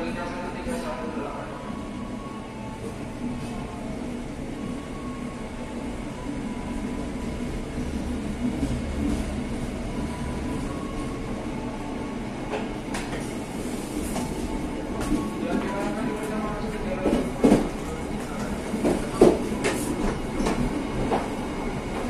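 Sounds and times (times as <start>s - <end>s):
train wheels rumbling on rail: 12.4s - 22.0s.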